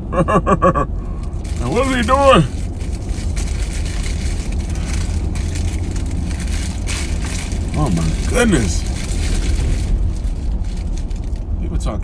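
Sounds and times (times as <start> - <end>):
car cabin engine and road rumble: 0.0 - 12.0.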